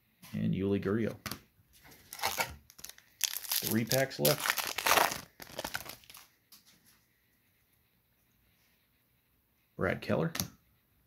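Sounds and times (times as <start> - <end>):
card pack wrapper tearing and crinkling: 2.0 - 6.3.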